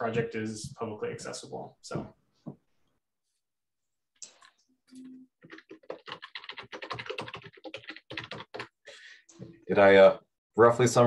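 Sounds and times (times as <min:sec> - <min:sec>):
typing on computer keyboard: 0:05.4 - 0:08.8.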